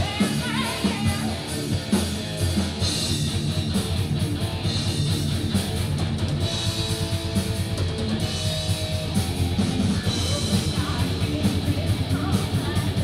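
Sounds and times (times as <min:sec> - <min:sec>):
distorted electric guitar: 0:00.0 - 0:13.0
drum kit: 0:00.0 - 0:13.0.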